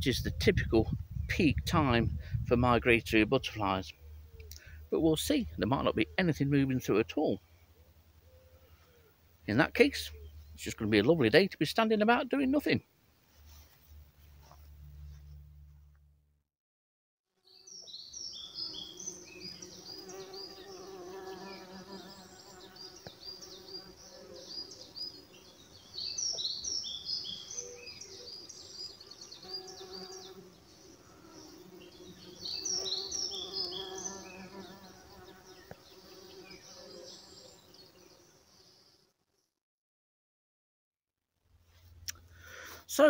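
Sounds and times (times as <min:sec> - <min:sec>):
insects buzzing: 0:17.4 - 0:39.0
small birds twittering: 0:17.5 - 0:39.0.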